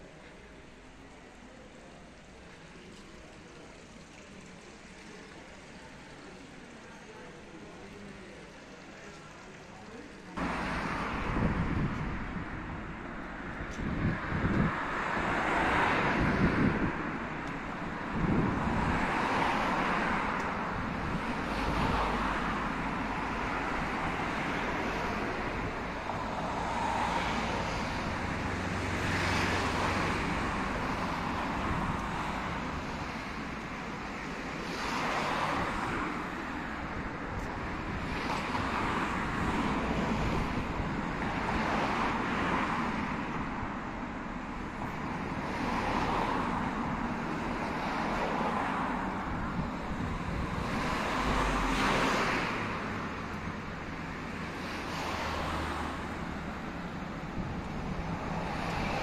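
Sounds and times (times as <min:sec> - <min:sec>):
cars passing: 0:00.0 - 0:59.0
steady traffic hum: 0:00.0 - 0:59.0.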